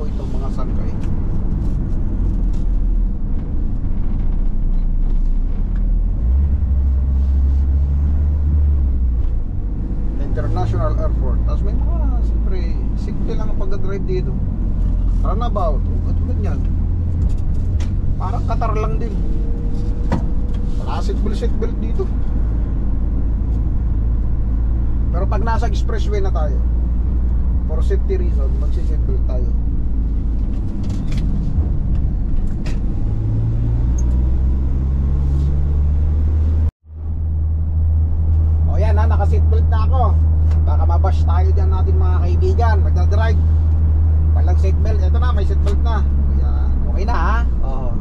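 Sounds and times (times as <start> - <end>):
diesel engine and road drone: 0.0 - 48.0.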